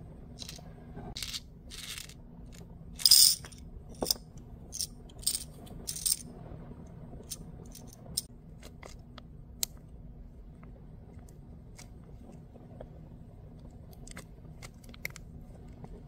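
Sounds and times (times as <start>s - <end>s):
metal charms rattling into jar: 3.0s - 6.2s.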